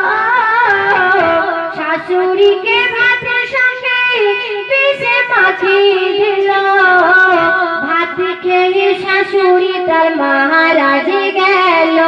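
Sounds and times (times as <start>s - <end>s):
woman singing devotional song: 0.0s - 12.0s.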